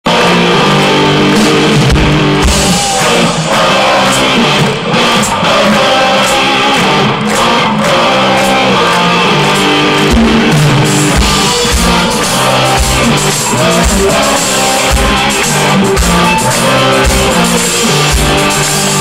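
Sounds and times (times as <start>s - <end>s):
drums: 0.1s - 19.0s
electric guitar: 0.1s - 19.0s.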